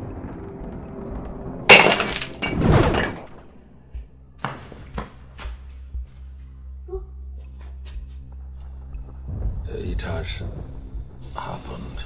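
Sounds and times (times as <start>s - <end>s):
cup crashing on floor: 1.7s - 3.3s.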